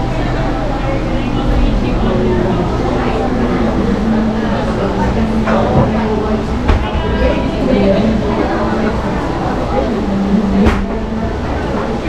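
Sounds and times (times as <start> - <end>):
background chatter: 0.0 - 12.0
low machine hum: 0.0 - 12.0.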